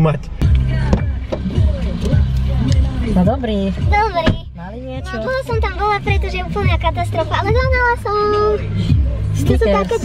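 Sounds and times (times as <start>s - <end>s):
background music with bass line: 0.0s - 10.0s
car door opening: 4.0s - 4.5s.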